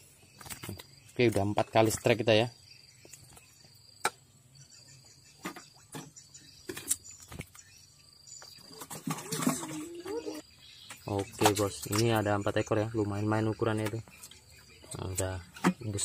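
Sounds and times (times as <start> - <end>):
faint high insect tone: 0.0 - 16.0.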